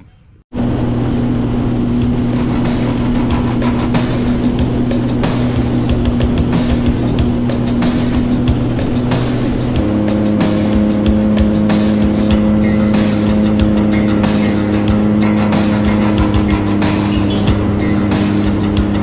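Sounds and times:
personal watercraft running: 0.0 - 19.0
wind buffeting microphone: 0.0 - 19.0
music with sustained notes: 0.7 - 19.0
water spray: 2.2 - 19.0.

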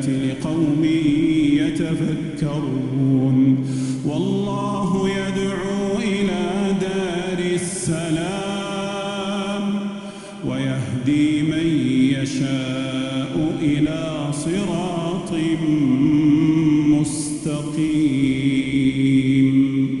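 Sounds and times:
man chanting recitation: 0.0 - 20.0.

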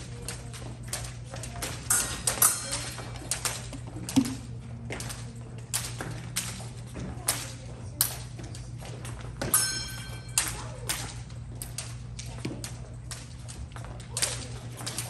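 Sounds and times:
fencing footwork and blade taps: 0.0 - 15.0
steady low hum: 0.0 - 15.0.

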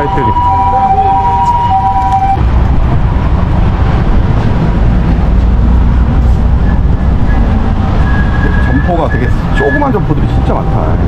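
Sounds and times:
two-tone siren: 0.0 - 2.4, 8.0 - 11.0
road traffic rumble: 0.0 - 11.0.

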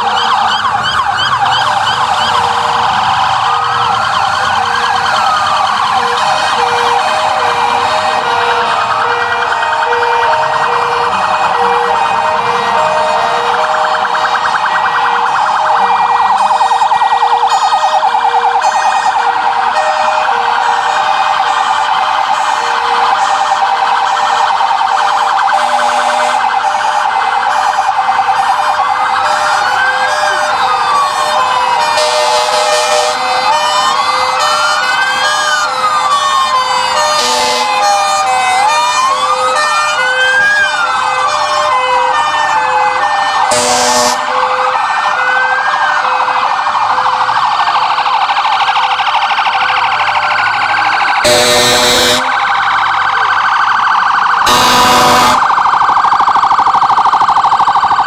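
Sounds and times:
rapid warbling siren: 0.0 - 58.0
wailing siren: 0.0 - 58.0.

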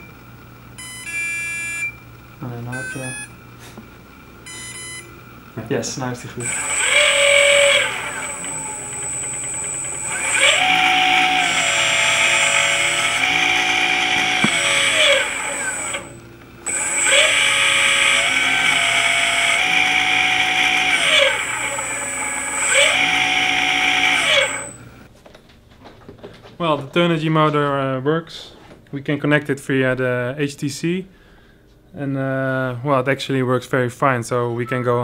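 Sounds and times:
electric motor whine: 4.4 - 25.1.

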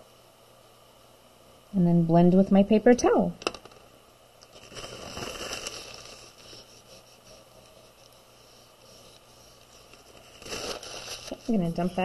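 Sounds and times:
paper towel rubbing on paper: 4.7 - 12.0.

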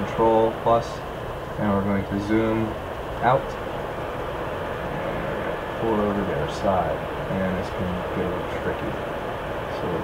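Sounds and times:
man talking: 0.0 - 3.7, 5.8 - 9.1, 9.7 - 10.0
background hiss and hum: 0.0 - 10.0.

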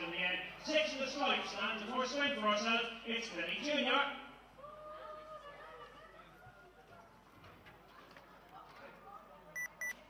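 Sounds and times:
faint murmur of voices: 4.5 - 10.0.

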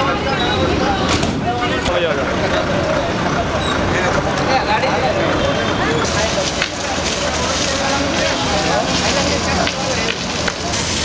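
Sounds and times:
people talking indistinctly: 0.0 - 11.0.

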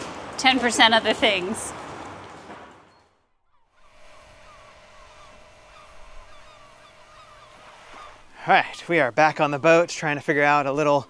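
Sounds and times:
small bird calls: 2.9 - 11.0
steady low hum: 3.6 - 11.0.

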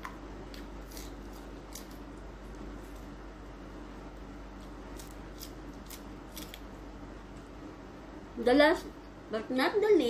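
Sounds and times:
person chewing crunchy vegetables: 0.0 - 3.1, 4.5 - 6.7.

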